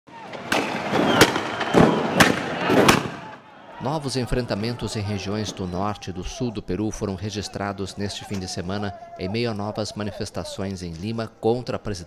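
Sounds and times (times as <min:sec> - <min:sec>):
loud sharp bangs: 0:00.2 - 0:03.5
man's voice: 0:03.8 - 0:12.0.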